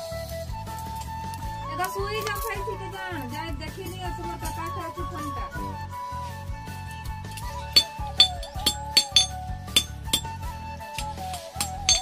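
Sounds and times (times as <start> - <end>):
background music wavering melody: 0.0 - 12.0
hammer clinking on anvil: 7.4 - 10.4, 11.0 - 12.0.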